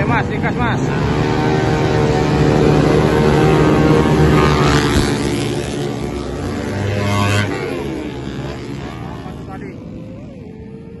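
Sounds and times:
motorcycle engines running hard: 0:00.0 - 0:11.0.

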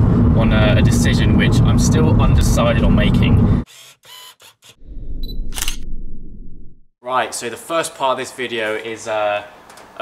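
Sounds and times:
low rumble: 0:00.0 - 0:03.6
camera shutter click: 0:05.5 - 0:05.8.

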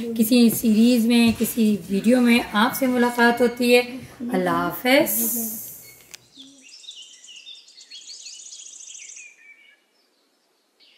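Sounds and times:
birds chirping and trilling: 0:05.8 - 0:10.9.

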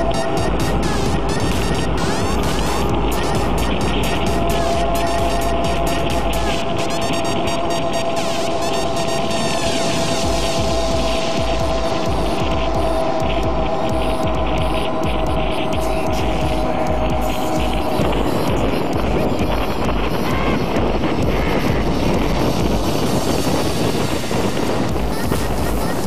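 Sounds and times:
motorcycle engine cruising: 0:00.0 - 0:26.0.

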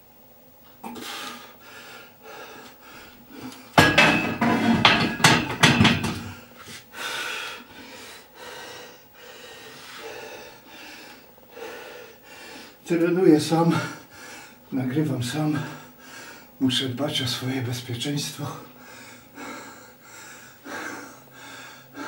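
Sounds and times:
barbell clanking onto rack: 0:03.8 - 0:06.3
iron plates rattling: 0:03.8 - 0:06.4
person gasping breaths: 0:06.2 - 0:12.8, 0:18.6 - 0:22.0.

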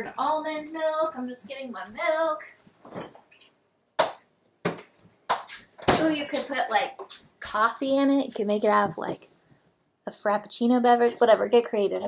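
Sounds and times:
person's voice: 0:05.9 - 0:09.3, 0:10.0 - 0:12.0.

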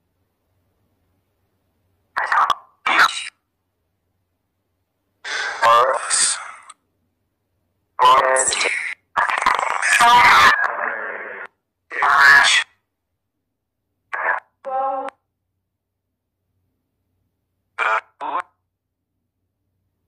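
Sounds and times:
garbled voice-like fragments: 0:02.2 - 0:03.4, 0:08.0 - 0:12.8, 0:14.1 - 0:15.1, 0:17.8 - 0:18.6.

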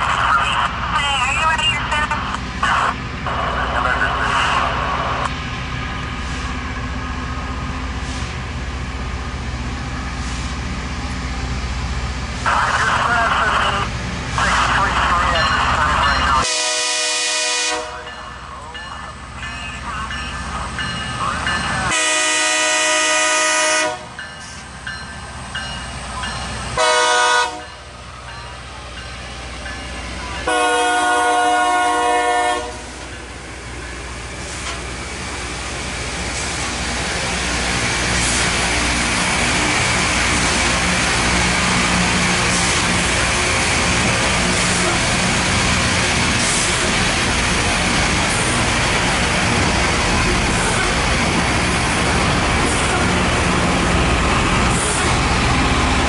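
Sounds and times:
diesel train engine rumble: 0:00.0 - 0:56.0
locomotive horn blasts: 0:16.4 - 0:18.1, 0:21.9 - 0:24.1, 0:26.8 - 0:27.8, 0:30.5 - 0:32.9.

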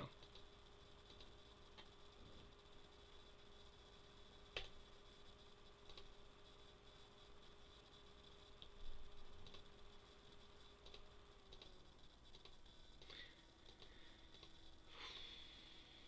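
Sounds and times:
faint room hum: 0:00.0 - 0:16.0
computer mouse click: 0:00.1 - 0:02.0, 0:04.5 - 0:04.8, 0:05.8 - 0:06.1, 0:09.4 - 0:09.7, 0:10.8 - 0:14.6.

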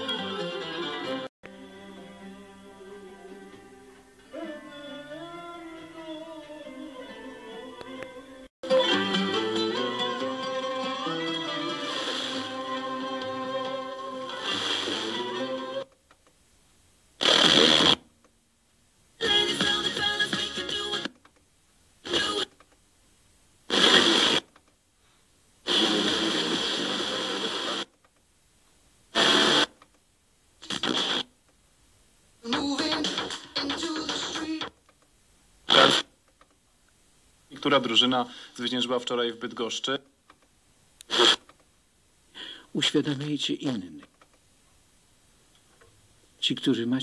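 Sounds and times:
radio music: 0:02.2 - 0:15.9, 0:17.2 - 0:18.0, 0:19.2 - 0:21.1, 0:22.0 - 0:22.6, 0:23.7 - 0:24.5, 0:25.6 - 0:28.0, 0:29.1 - 0:29.8, 0:30.6 - 0:31.3, 0:32.4 - 0:34.8, 0:35.7 - 0:36.1, 0:37.5 - 0:40.0
radio stations in short bursts: 0:11.7 - 0:12.7, 0:14.2 - 0:15.9, 0:17.2 - 0:18.0, 0:22.0 - 0:22.6, 0:23.7 - 0:24.5, 0:25.6 - 0:28.0, 0:29.1 - 0:29.8, 0:30.6 - 0:31.3, 0:32.4 - 0:34.8, 0:35.7 - 0:36.1, 0:41.0 - 0:41.6.

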